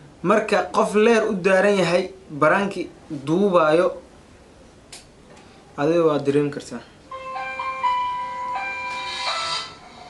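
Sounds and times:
electronic chime melody: 7.1s - 9.8s.

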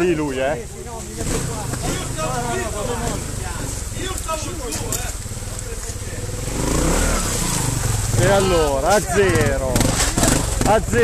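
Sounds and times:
motorcycle engine revving: 0.1s - 11.0s.

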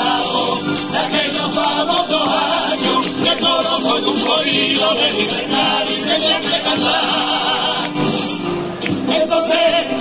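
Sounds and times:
choir singing together: 0.0s - 8.4s, 9.0s - 10.0s.

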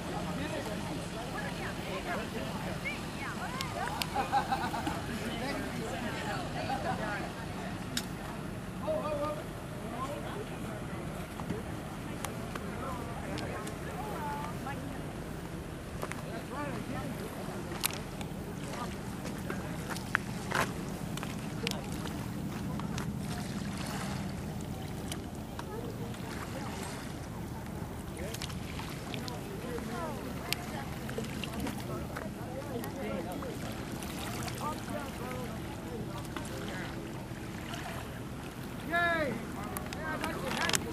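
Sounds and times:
faint indistinct voices: 0.0s - 40.9s
steady low hum: 0.0s - 40.9s
steady low rumble: 10.6s - 40.9s.

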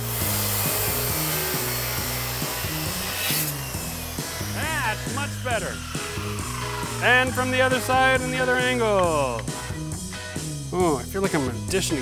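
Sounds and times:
circular saw cutting wood: 0.0s - 9.7s.

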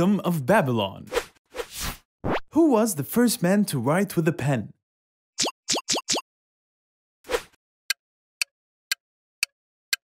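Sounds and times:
cartoon pop blips rising in pitch: 5.4s - 6.2s.

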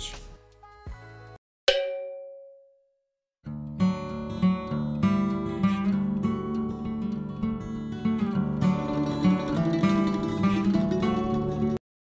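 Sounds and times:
bell-like ding: 1.7s - 2.9s.

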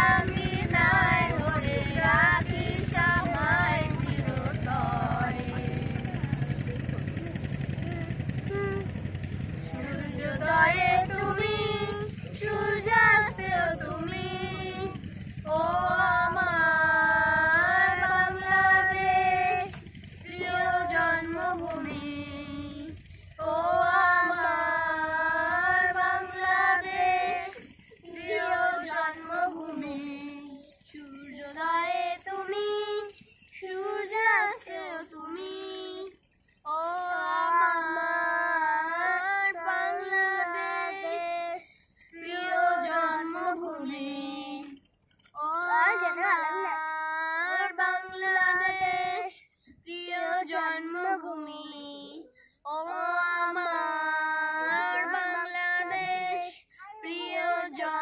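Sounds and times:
children and woman singing: 0.0s - 6.5s, 7.4s - 44.8s, 45.4s - 58.0s
low hum: 0.0s - 48.9s.

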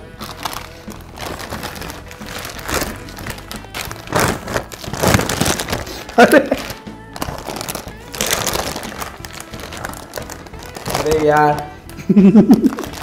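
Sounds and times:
chip bags crinkling: 0.0s - 13.0s
light background music: 0.0s - 13.0s.

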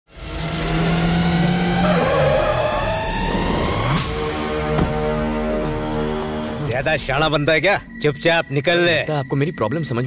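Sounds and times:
jeep engine running and revving: 0.2s - 6.0s.

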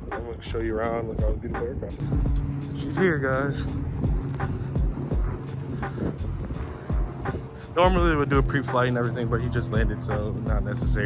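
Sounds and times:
light airplane engine droning: 0.0s - 11.0s
music with steady beat: 0.0s - 11.0s.

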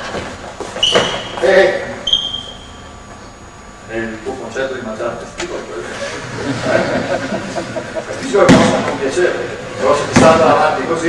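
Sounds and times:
room noise hiss: 0.0s - 11.0s
indistinct echoing voices: 5.3s - 11.0s.

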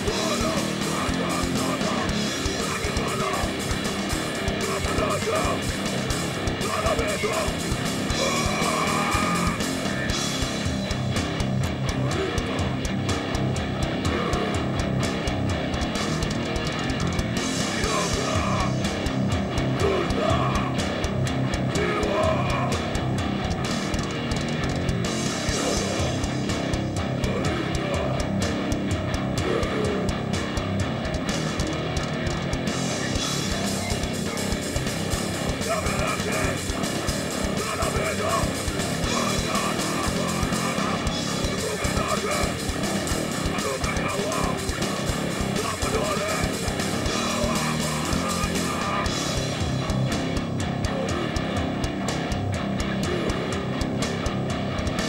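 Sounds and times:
drum kit: 0.0s - 55.0s
electric bass guitar: 0.0s - 55.0s
electric guitar: 0.0s - 55.0s.

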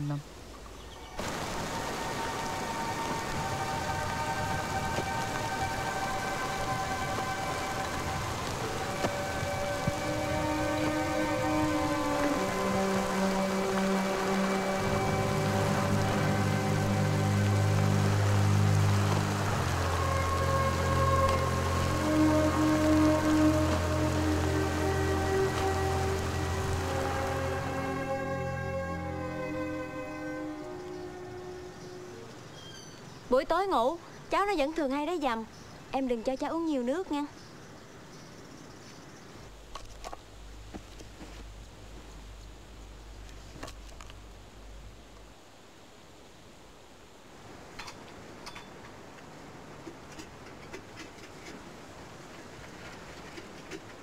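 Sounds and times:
film score of held notes: 0.0s - 37.4s
steady rain: 0.0s - 54.0s.

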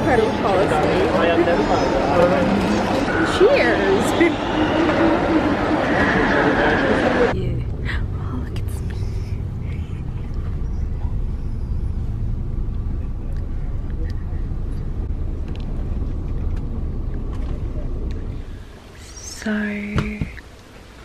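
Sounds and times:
road and engine rumble: 0.0s - 21.0s.

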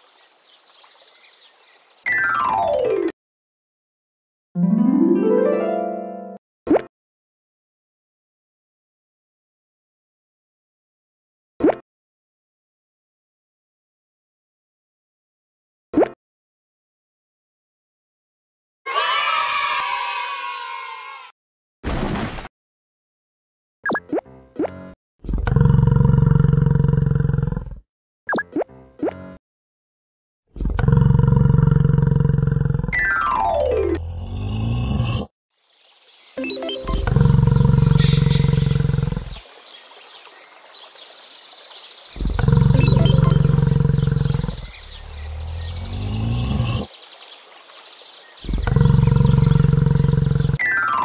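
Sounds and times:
low rough animal call: 25.2s - 27.4s, 30.6s - 32.9s, 36.9s - 39.4s, 42.2s - 46.9s, 48.4s - 50.6s
cartoon downward sweep effects: 33.0s - 34.4s, 36.4s - 39.0s, 42.7s - 43.6s
yak calling: 37.0s - 39.3s.

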